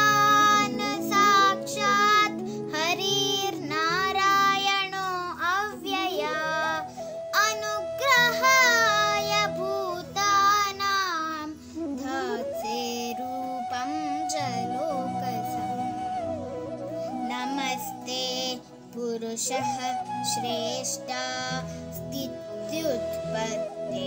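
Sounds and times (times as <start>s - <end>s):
child singing: 0.0s - 16.1s, 17.2s - 24.0s.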